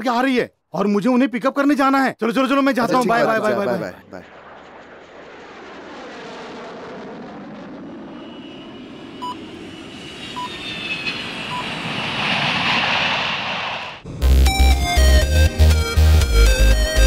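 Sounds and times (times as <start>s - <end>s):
jet engines whining: 2.9s - 17.0s
short beeps: 9.2s - 9.4s, 11.5s - 11.8s.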